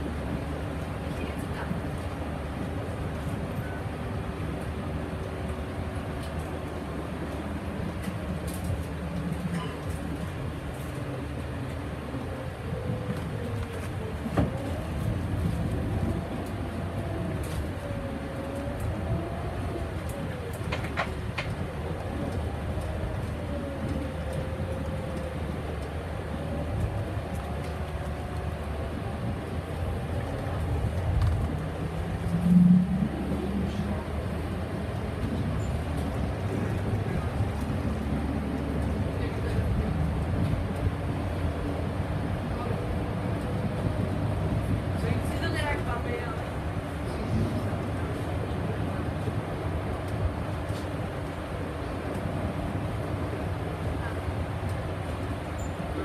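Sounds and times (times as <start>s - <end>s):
bus engine and road rumble: 0.0s - 56.0s.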